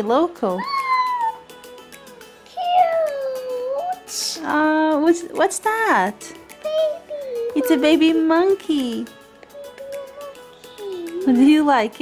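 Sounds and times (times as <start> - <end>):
quiet background music: 0.0 - 12.0
wavering cooing sound: 9.5 - 11.4.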